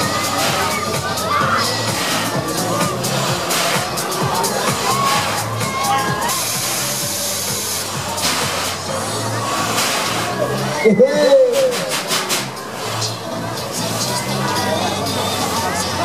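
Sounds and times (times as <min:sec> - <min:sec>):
riders shouting and screaming: 0:00.0 - 0:08.3
fairground ride music: 0:00.0 - 0:16.0
burst of hiss: 0:03.0 - 0:04.1, 0:06.3 - 0:10.7, 0:11.6 - 0:13.2.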